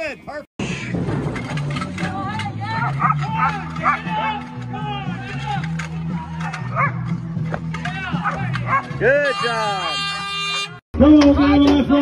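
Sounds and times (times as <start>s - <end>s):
dog barking: 6.8s - 7.0s, 8.2s - 9.0s.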